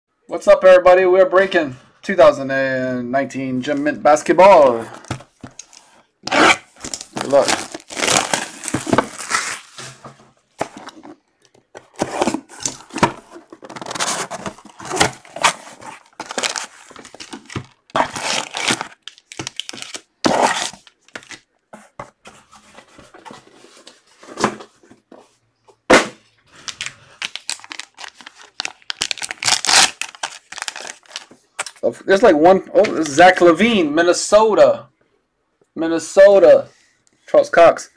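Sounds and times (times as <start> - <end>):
packaging rustling and crinkling: 4.9 - 21.4, 26.5 - 31.8.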